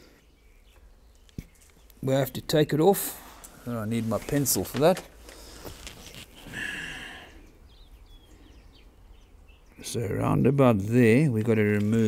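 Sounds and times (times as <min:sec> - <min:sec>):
birds calling: 0:00.0 - 0:12.0.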